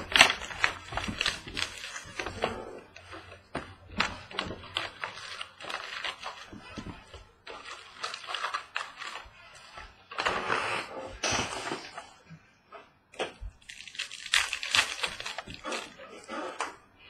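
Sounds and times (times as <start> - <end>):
wrapper tearing open: 0.0 - 3.3, 3.9 - 10.3, 13.6 - 16.6
foil wrappers crinkling: 0.0 - 10.6, 13.2 - 16.6.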